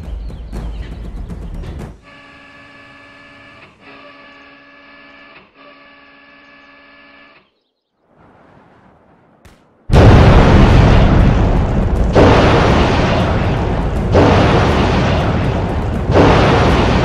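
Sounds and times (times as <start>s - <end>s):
drum-heavy music: 0.0s - 2.0s
electric actuator motor whining: 2.1s - 7.5s.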